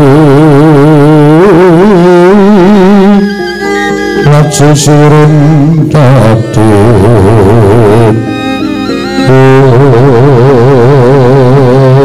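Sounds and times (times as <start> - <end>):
gamelan music: 3.0 - 10.8.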